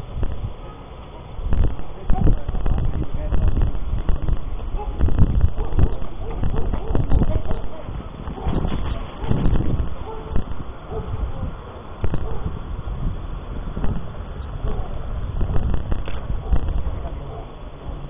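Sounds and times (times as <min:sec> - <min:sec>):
wind buffeting microphone: 0:00.0 - 0:18.0
faint murmur of voices: 0:00.5 - 0:12.6.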